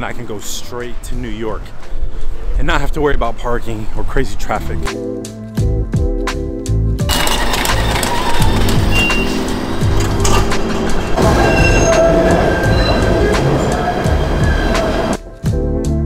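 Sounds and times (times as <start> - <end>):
background music with a beat: 4.8 - 16.0
train wheel squeals: 7.1 - 15.2
train rattling rumble: 7.1 - 15.3.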